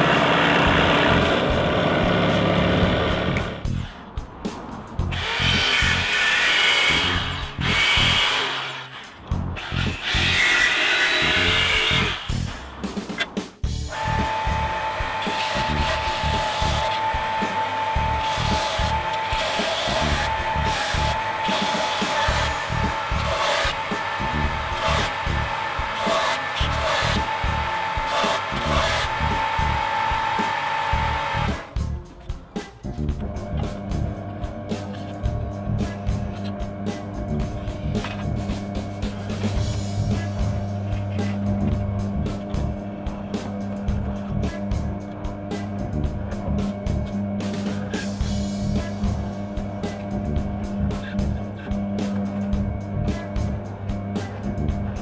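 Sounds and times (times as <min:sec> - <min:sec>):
belt sander whining: 0:00.0 - 0:03.6, 0:13.9 - 0:31.8
jigsaw cutting metal: 0:00.0 - 0:03.6, 0:05.1 - 0:12.5, 0:13.9 - 0:31.8
background music with beat: 0:12.3 - 0:55.0.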